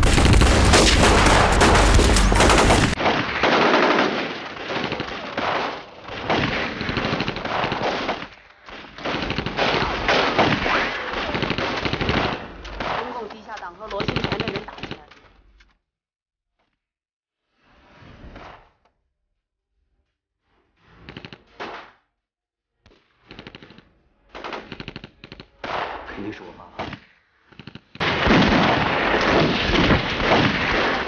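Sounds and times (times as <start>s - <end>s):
machine-gun and rifle fire: 0.0s - 13.3s, 28.0s - 31.0s.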